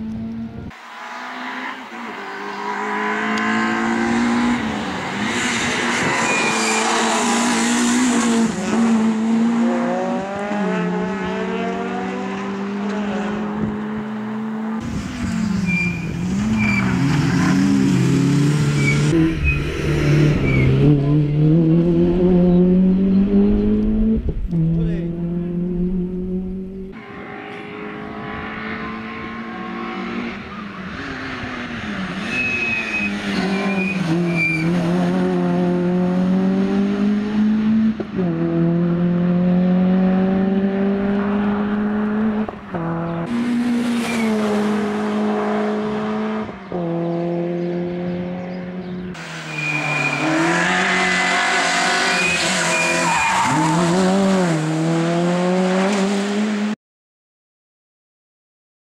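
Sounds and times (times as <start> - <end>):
rally car engine revving: 0.0 - 56.8
high-pitched tyre squeals: 0.8 - 8.8, 15.1 - 18.0, 18.6 - 20.9, 27.0 - 35.2, 43.1 - 45.6, 49.2 - 54.6.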